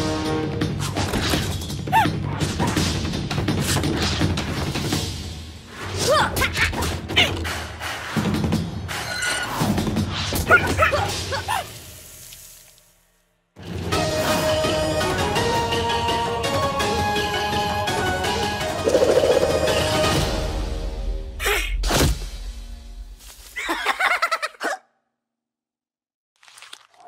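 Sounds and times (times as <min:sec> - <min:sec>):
cartoon character laughing: 0:23.6 - 0:24.8.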